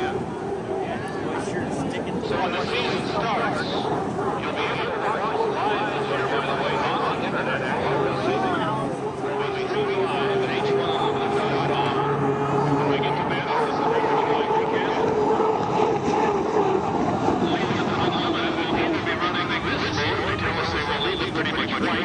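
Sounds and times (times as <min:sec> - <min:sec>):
turbine engine whine: 0:00.0 - 0:22.0.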